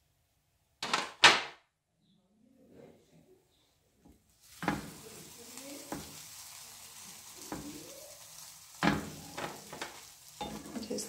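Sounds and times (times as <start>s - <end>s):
sandwiches sizzling in grill pan: 4.3s - 11.0s.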